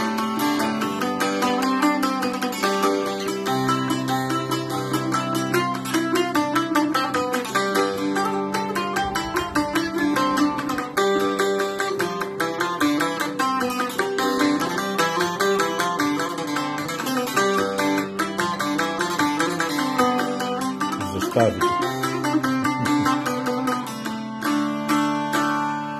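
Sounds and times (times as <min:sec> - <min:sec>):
plucked lute notes: 0:00.0 - 0:25.9.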